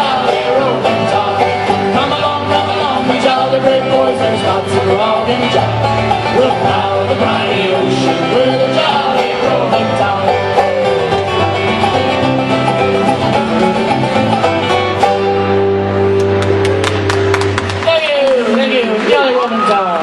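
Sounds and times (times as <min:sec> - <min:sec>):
folk band playing: 0:00.0 - 0:19.6
people clapping: 0:16.1 - 0:20.0.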